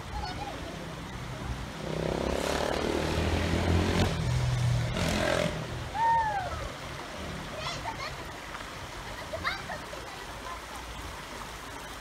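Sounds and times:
engine passing by: 1.4s - 6.0s.

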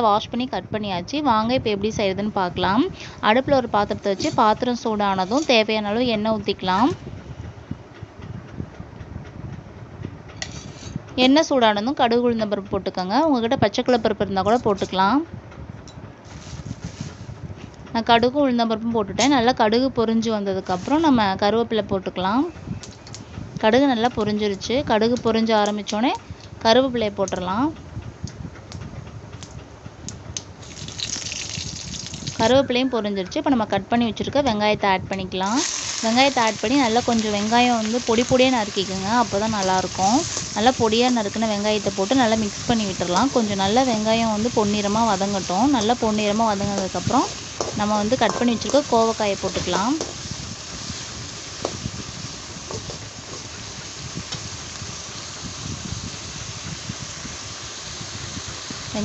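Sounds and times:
oil sizzling: 1.9s - 7.0s, 16.2s - 17.3s, 30.6s - 32.9s, 35.4s - 59.0s
skimmer scraping against pan: 10.4s - 11.0s
seeds popping in hot oil: 30.6s - 32.6s, 35.1s - 59.0s.

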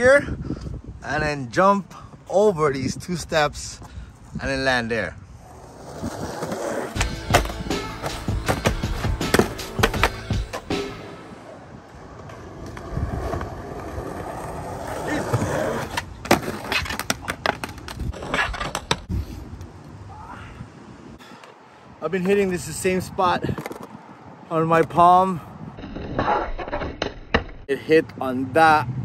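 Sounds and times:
skateboard wheels rolling on concrete: 1.0s - 20.1s, 20.9s - 29.0s
skateboard clacks and knocks: 7.0s - 10.7s.

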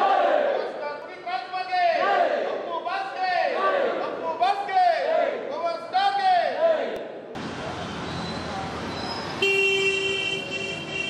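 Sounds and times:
street noise: 0.0s - 11.0s
vehicle horn: 9.4s - 11.0s.

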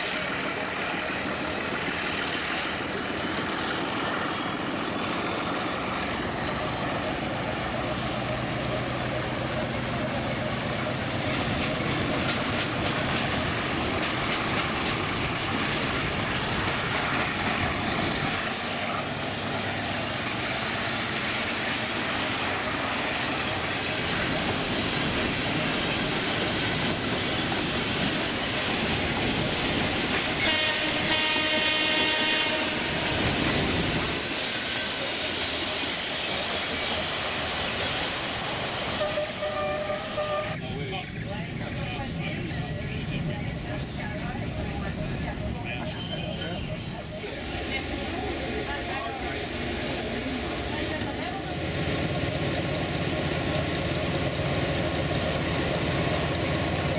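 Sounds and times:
train running on track: 0.0s - 56.9s
train horn: 30.4s - 33.2s, 38.9s - 40.7s.

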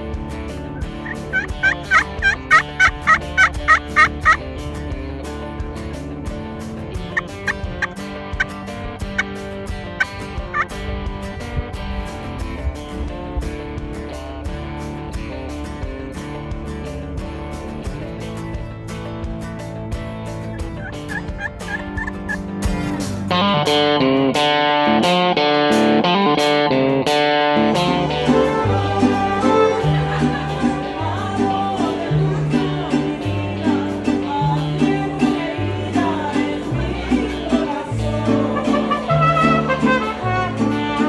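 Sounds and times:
quiet guitar music: 0.0s - 41.0s
wild turkey calling: 0.8s - 4.4s, 20.6s - 22.4s.

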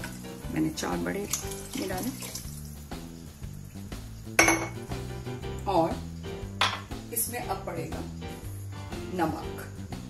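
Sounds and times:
glass tumbler knocking on surface: 4.4s - 4.8s, 6.6s - 6.9s.

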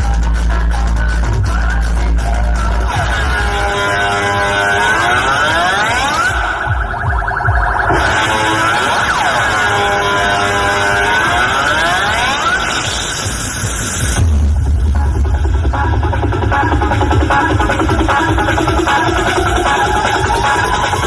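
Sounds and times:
loud dance music: 0.0s - 21.0s
siren-like synth sweep: 2.9s - 14.2s, 17.4s - 21.0s.

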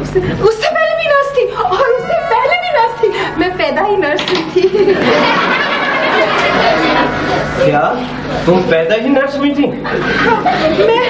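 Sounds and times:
audience laughing: 2.1s - 8.7s, 9.8s - 11.0s.

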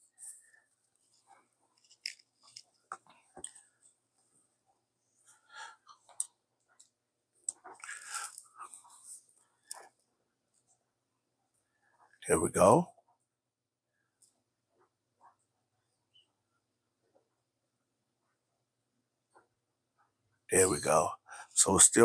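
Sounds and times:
cable clicks and rustles: 0.0s - 4.8s, 5.8s - 10.8s.

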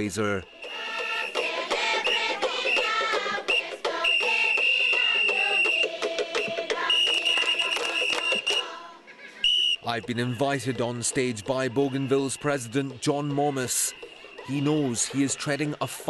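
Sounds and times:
high whistle-like tone: 0.5s - 8.7s, 9.4s - 9.9s
crowd singing: 0.5s - 16.0s.

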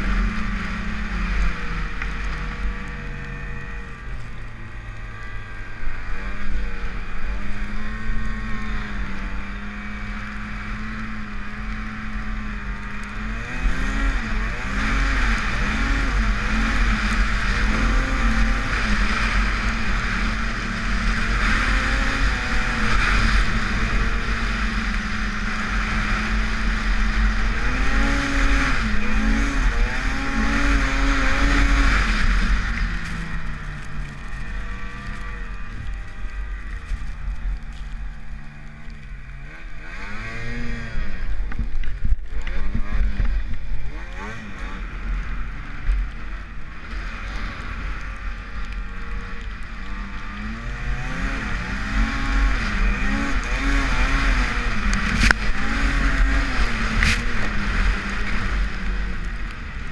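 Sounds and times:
snowmobile engine revving: 0.0s - 59.9s.

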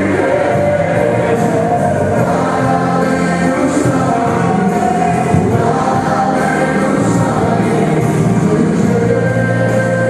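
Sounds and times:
band with guitar: 0.0s - 10.0s
voices singing worship song: 0.0s - 10.0s.

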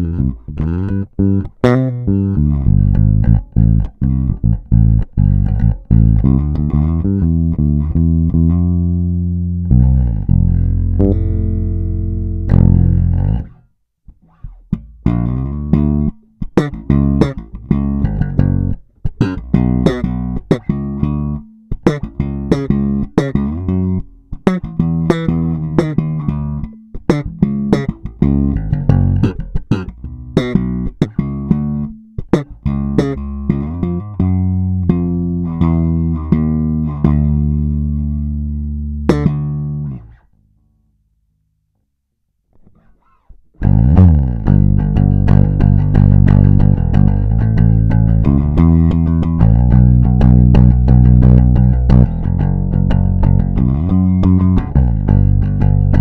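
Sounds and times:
electric bass plucked notes: 0.0s - 40.4s, 42.6s - 56.0s.

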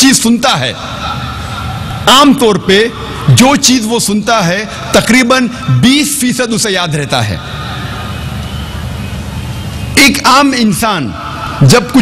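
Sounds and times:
rumble of large audience: 0.0s - 12.0s.

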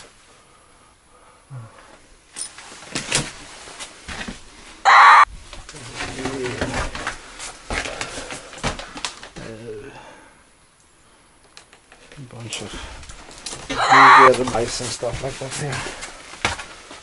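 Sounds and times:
loud short squeak: 13.7s - 14.3s.

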